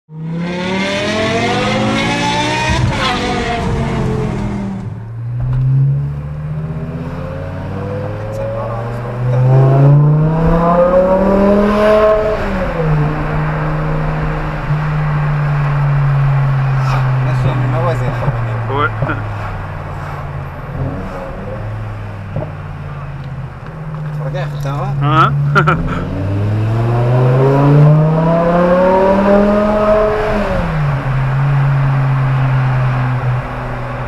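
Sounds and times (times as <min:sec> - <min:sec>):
car engine revving: 0:00.1 - 0:34.0.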